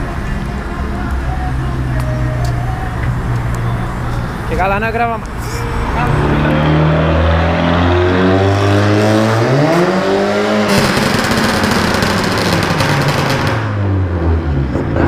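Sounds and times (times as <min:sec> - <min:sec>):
car engine accelerating: 0:00.0 - 0:15.0
loud rushing noise: 0:00.0 - 0:15.0.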